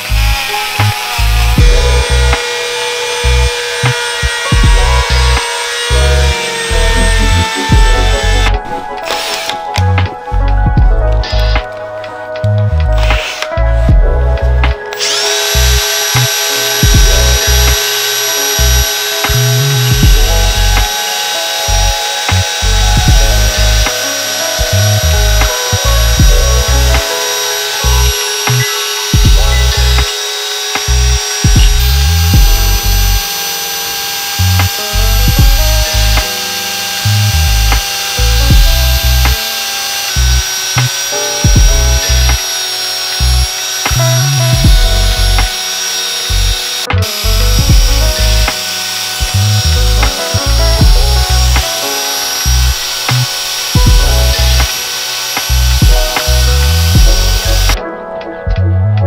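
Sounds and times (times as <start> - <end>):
drill with wire brush whining: 0.0 - 11.8, 12.9 - 13.9, 14.7 - 57.8
background music with beat: 0.0 - 59.0.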